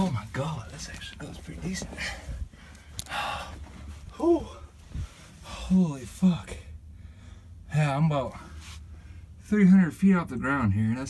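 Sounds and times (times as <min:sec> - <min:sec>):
man gasping: 0:02.0 - 0:05.8.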